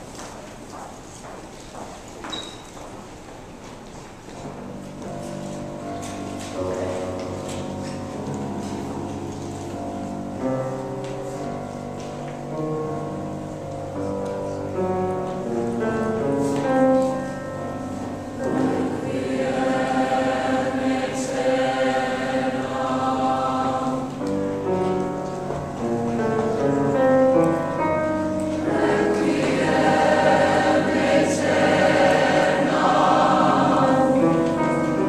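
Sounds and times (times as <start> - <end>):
choir singing sustained chords: 18.2 - 24.5, 28.0 - 35.0.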